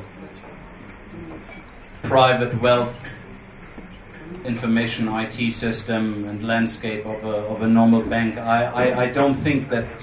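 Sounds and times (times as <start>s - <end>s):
soft vocal hum: 2.9s - 4.8s.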